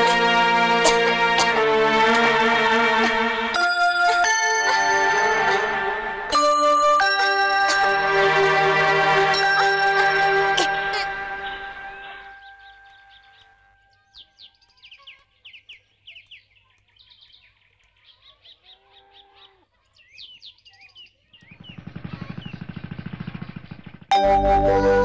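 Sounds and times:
background music: 0.0 - 13.8, 24.1 - 25.0
small birds chirping: 9.5 - 24.1.

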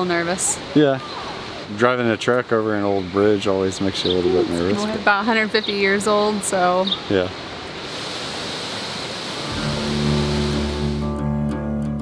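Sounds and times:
water rushing from waterfall: 0.0 - 2.8, 5.8 - 11.0
background music with held tones: 9.5 - 12.0.

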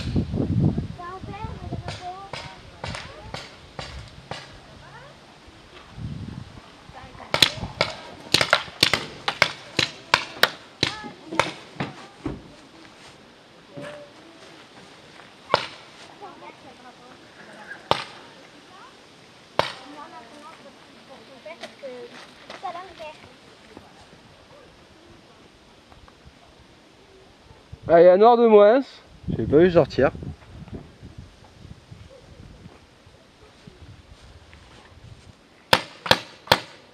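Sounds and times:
paintball markers firing: 7.3 - 11.7.

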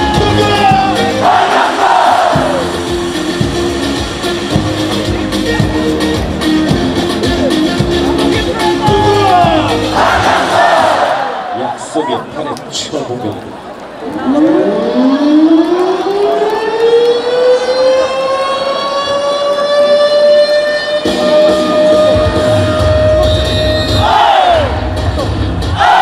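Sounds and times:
crowd shouting: 0.0 - 2.8, 8.6 - 12.2, 23.9 - 26.0
heavy bass beat: 0.0 - 11.0, 21.1 - 26.0
siren sound effect: 14.2 - 24.1.

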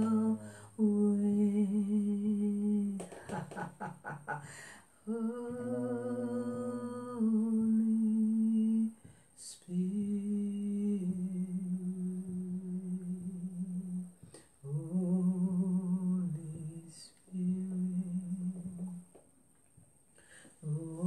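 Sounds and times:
person humming a slow tune: 0.0 - 4.4, 5.0 - 19.2, 20.6 - 21.0.

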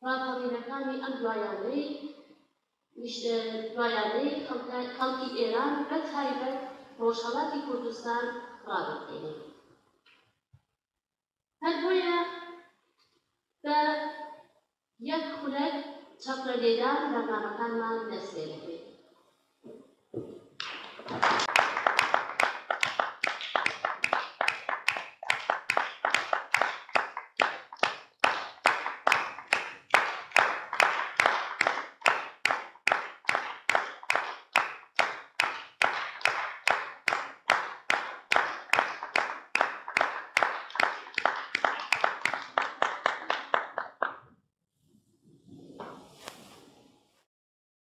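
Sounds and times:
audience clapping in unison: 20.6 - 44.2.

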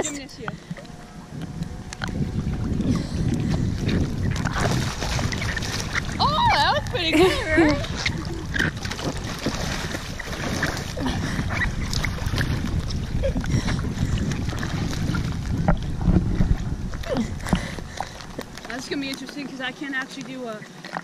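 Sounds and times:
water lapping and sloshing: 0.0 - 21.0
wind rumble on microphone: 0.0 - 21.0
small splashes and knocks: 3.8 - 7.0.

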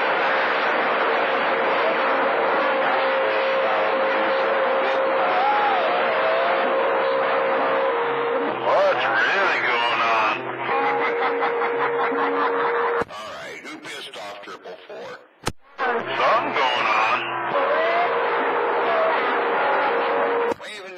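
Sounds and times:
garbled distorted radio voices: 7.8 - 17.9
radio static hiss: 8.5 - 10.9.

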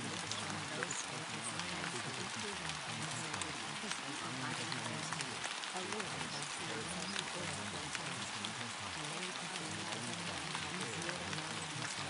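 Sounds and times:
low muffled spoken voice: 0.0 - 12.0
rain-like hiss with drop ticks: 0.0 - 12.0.

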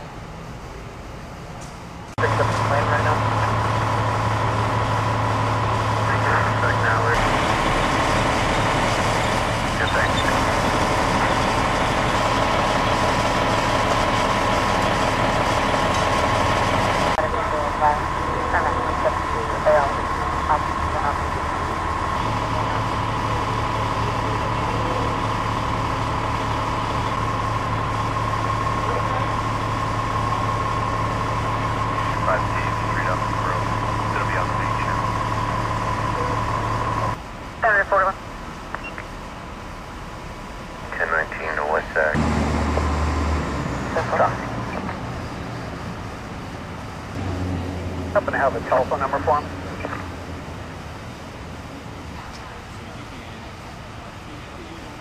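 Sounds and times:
vehicle engine idling: 0.0 - 55.0
indistinct voices: 2.2 - 38.2, 40.9 - 46.0, 47.2 - 55.0.

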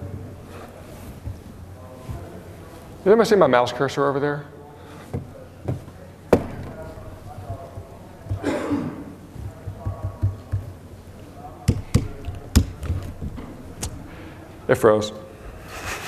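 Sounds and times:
keyboard taps and knocks: 9.4 - 10.8.

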